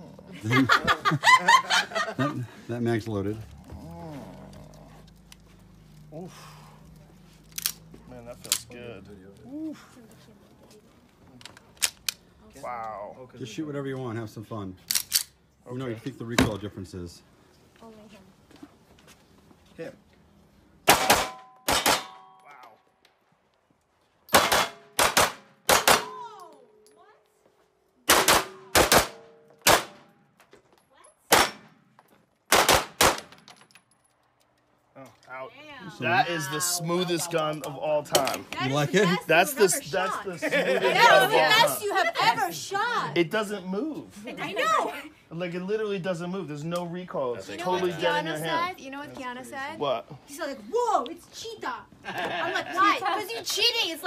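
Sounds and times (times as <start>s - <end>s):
handgun shots: 20.9s - 22.2s, 24.3s - 26.2s, 28.1s - 30.0s, 31.3s - 31.7s, 32.5s - 33.4s
metallic ring of steel targets: 20.9s - 22.6s.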